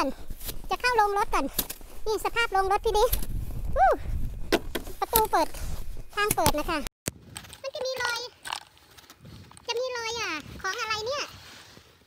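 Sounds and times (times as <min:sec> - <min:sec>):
footsteps crunching in snow: 0:00.0 - 0:06.3.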